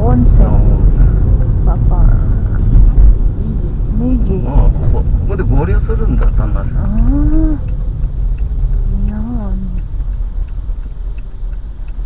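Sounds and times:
car rumbling on the road: 0.0s - 12.0s
voices talking in a car: 0.0s - 12.0s.

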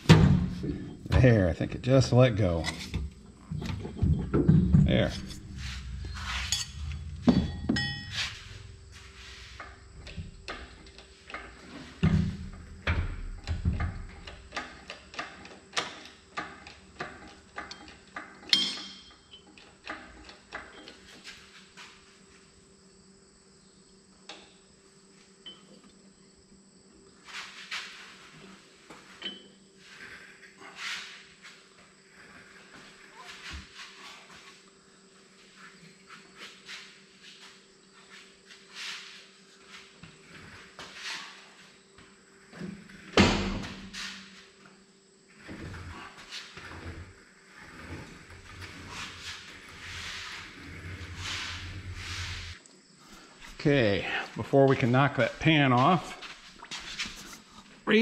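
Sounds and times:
metal knocks: 3.6s - 8.6s.

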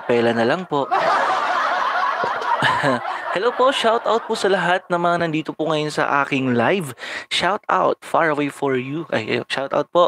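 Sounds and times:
man laughing: 0.0s - 5.2s.

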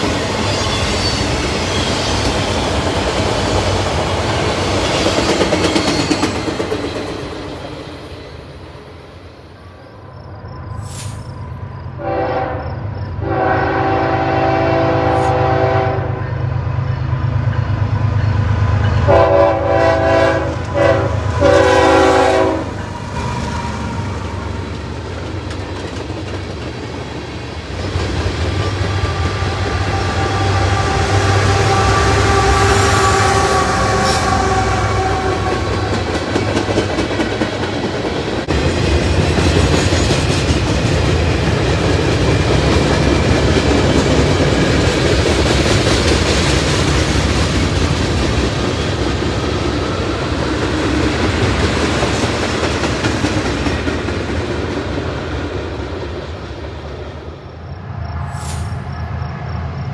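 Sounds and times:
train wheels clattering on rails: 0.0s - 9.0s, 16.8s - 57.2s
locomotive engine rumbling: 10.2s - 59.9s
train air horn blasts: 12.0s - 16.4s, 19.0s - 22.8s, 28.9s - 36.1s.

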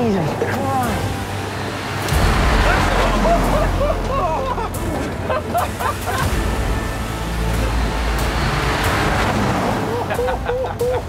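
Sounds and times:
truck engine rumbling: 0.0s - 11.0s.

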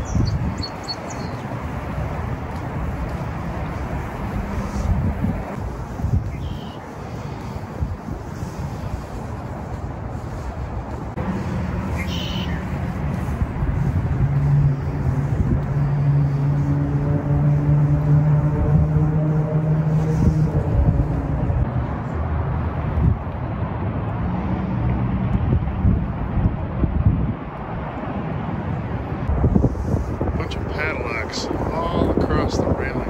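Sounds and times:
city traffic: 0.0s - 33.0s
vehicle engine hum: 0.0s - 33.0s
wind on microphone: 0.0s - 33.0s.

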